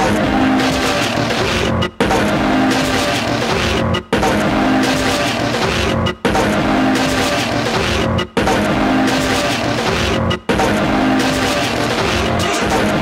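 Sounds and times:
noisy experimental electronic music: 0:00.0 - 0:13.0.

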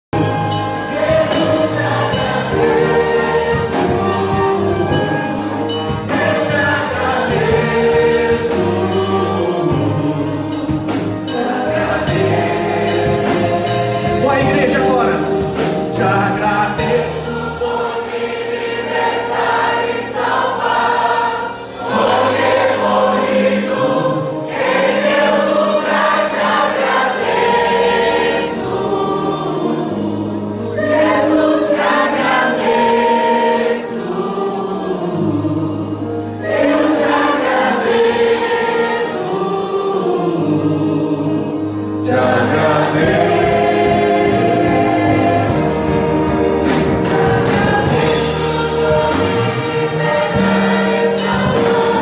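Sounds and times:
keyboard: 0:00.1 - 0:52.0
choir singing a hymn: 0:00.2 - 0:52.0
violins: 0:00.2 - 0:52.0.

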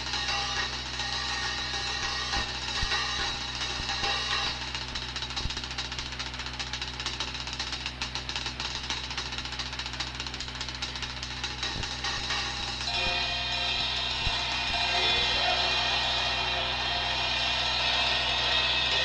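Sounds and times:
rapid drum roll: 0:00.0 - 0:19.0
cymbals crashing: 0:11.4 - 0:19.0.

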